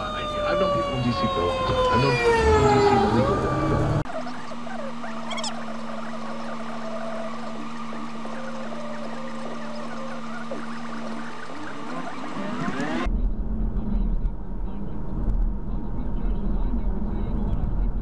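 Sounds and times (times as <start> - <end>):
steady hum: 0.0 - 18.0
squeaky warbling sped-up chatter: 0.1 - 13.1
car cabin road rumble: 0.1 - 18.0.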